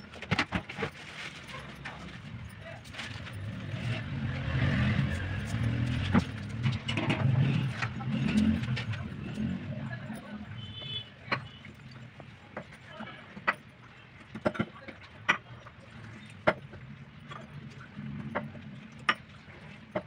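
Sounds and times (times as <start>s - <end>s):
passing motor vehicle rumble: 1.8s - 12.0s.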